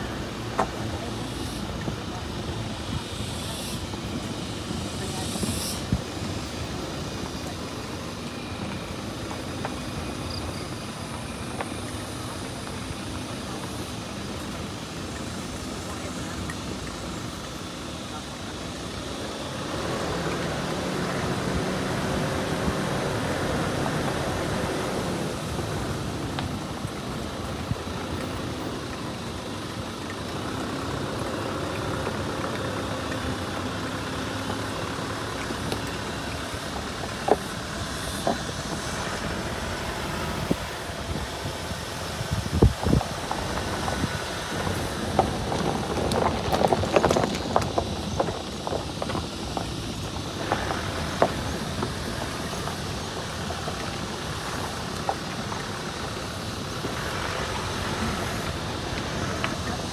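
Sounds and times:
vehicle engine and tyres on dirt road: 0.0s - 59.9s.

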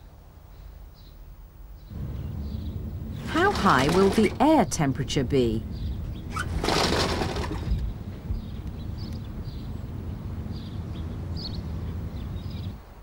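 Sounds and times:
steady low rumble: 1.9s - 13.0s.

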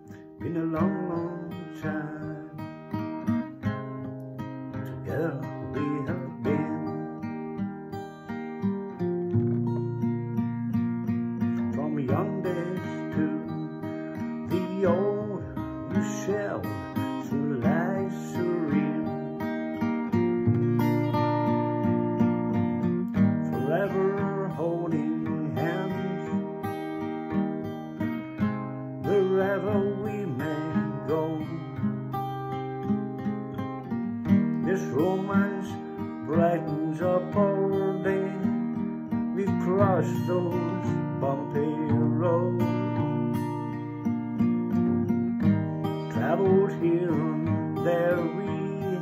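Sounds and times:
man singing: 0.0s - 4.0s, 4.7s - 7.6s, 11.4s - 19.8s, 23.1s - 27.0s, 28.4s - 32.3s, 34.2s - 43.6s, 45.4s - 49.0s
acoustic guitar slow ballad: 0.0s - 49.0s.

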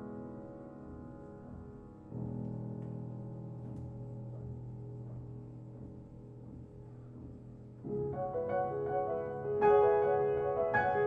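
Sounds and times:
solo piano chords: 0.0s - 11.0s.

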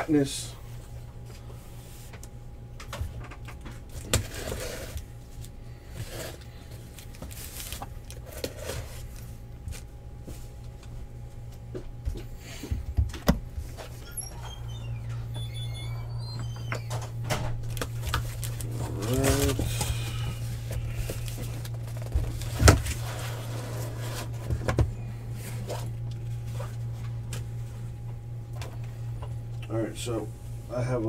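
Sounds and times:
steady low hum: 0.0s - 31.0s
cardboard rustling and scraping: 3.9s - 6.4s, 7.0s - 10.6s, 17.7s - 27.1s.

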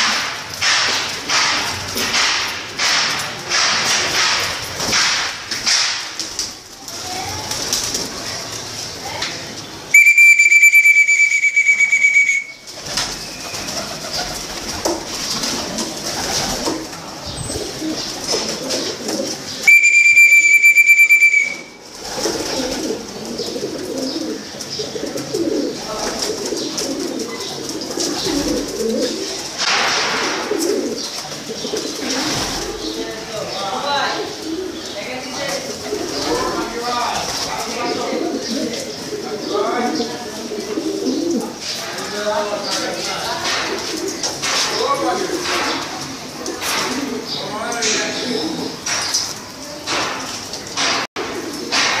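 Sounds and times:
high steady whistle tone: 9.9s - 12.6s, 19.7s - 21.8s
pigeons cooing: 11.8s - 19.8s, 21.3s - 33.4s, 34.1s - 49.8s, 50.5s - 52.0s.

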